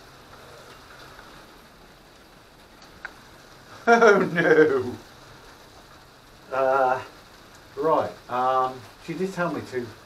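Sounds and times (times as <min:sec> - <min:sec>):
rain on greenhouse roof: 0:00.0 - 0:10.0.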